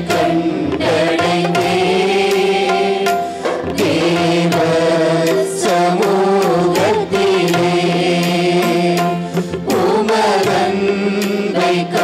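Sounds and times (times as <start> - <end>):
group of singers: 0.0 - 12.0
percussion strikes: 0.0 - 12.0.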